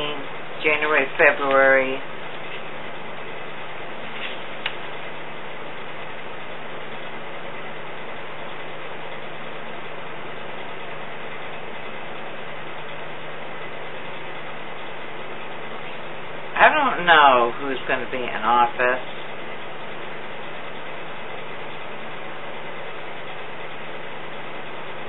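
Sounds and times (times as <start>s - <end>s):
faint low hum: 0.0s - 25.0s.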